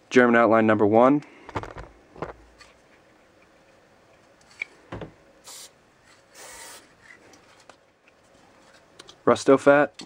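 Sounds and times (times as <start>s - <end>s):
spray paint can hissing: 5.4s - 5.8s.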